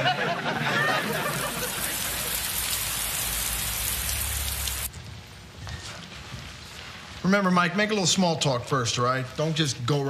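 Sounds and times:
heavy rain falling: 0:00.4 - 0:10.0.

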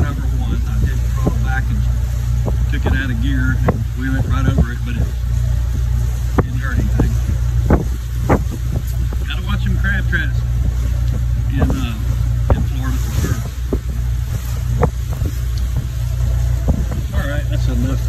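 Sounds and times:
boat engine droning: 0:00.0 - 0:18.0
wind on microphone: 0:00.0 - 0:18.0
short knocks: 0:10.6 - 0:17.1.

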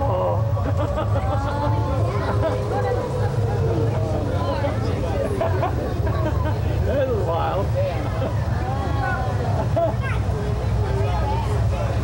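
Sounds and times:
passengers talking: 0:00.0 - 0:12.0
tram rumbling: 0:00.0 - 0:12.0.

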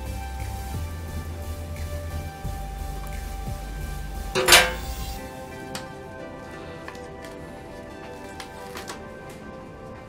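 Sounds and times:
background music: 0:00.0 - 0:10.0
plastic cling film crinkling: 0:04.8 - 0:10.0.

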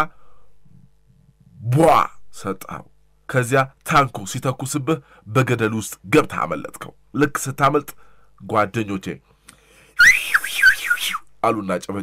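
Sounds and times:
man speaking: 0:01.6 - 0:09.2, 0:11.4 - 0:12.0
high whistle-like sweeping tone: 0:10.0 - 0:11.2.

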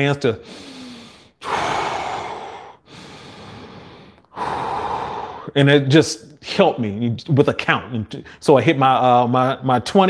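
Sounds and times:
man breathing deeply: 0:00.4 - 0:05.6.

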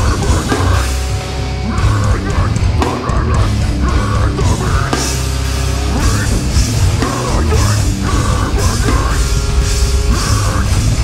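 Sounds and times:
harsh screamed vocals: 0:00.0 - 0:11.0
heavily distorted guitars: 0:00.0 - 0:11.0
pounding drum kit: 0:00.0 - 0:11.0.

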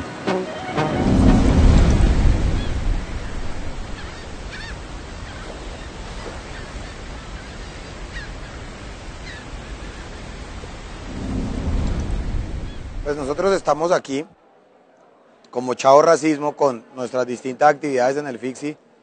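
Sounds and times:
rushing water: 0:00.0 - 0:13.9
deep rumble: 0:01.0 - 0:05.2, 0:10.9 - 0:13.8.

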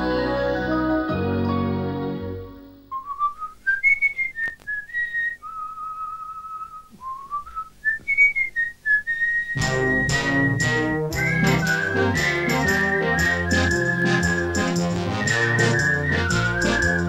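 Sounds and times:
person whistling a tune: 0:02.9 - 0:17.0
orchestral music: 0:09.6 - 0:17.0.

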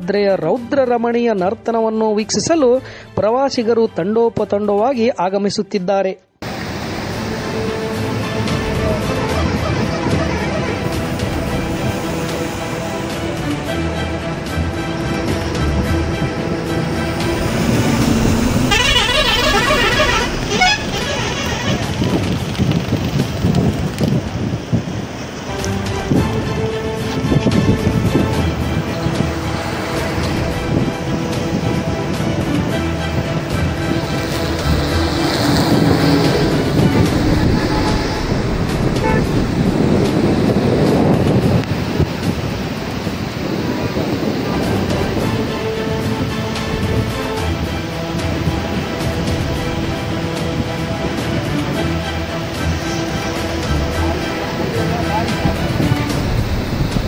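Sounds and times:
road traffic going by: 0:06.4 - 0:57.0
roar of rushing floodwater: 0:06.4 - 0:57.0
warbling vehicle horn: 0:16.5 - 0:22.3, 0:34.8 - 0:39.6.

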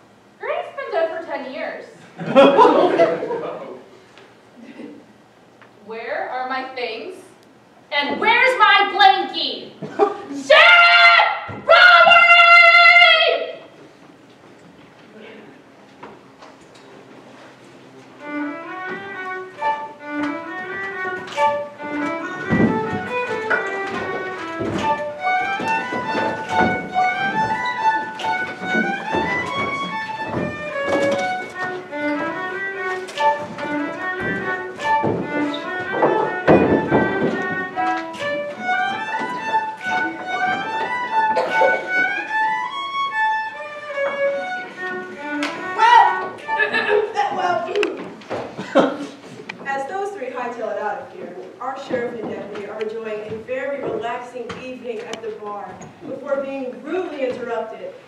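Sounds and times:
lively fiddle tune: 0:18.0 - 0:47.8
thumps: 0:20.2 - 0:42.2.

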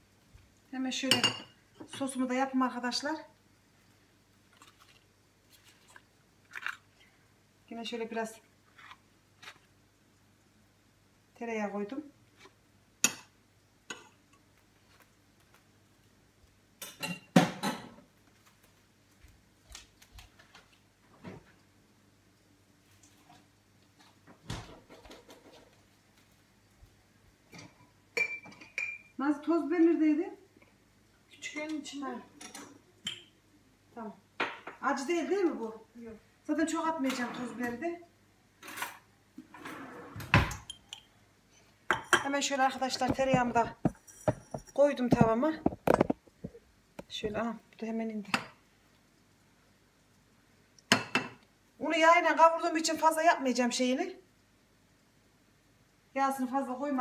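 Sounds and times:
dishes and cutlery clinking: 0:16.8 - 0:18.0, 0:41.9 - 0:46.2.

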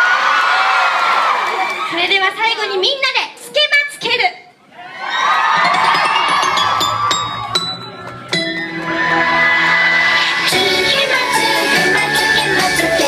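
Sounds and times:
crowd cheering and shouting: 0:00.0 - 0:02.0, 0:04.7 - 0:13.0
electronic pop song over speakers: 0:05.6 - 0:13.0.

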